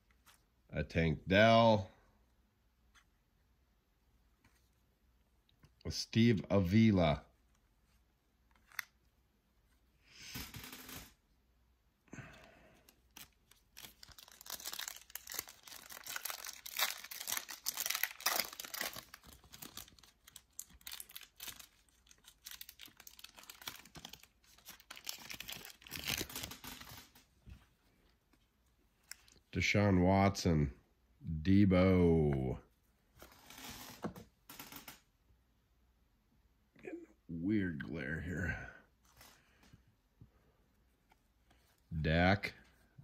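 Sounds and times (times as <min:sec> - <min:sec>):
foil pack tearing: 0:13.2 - 0:27.0.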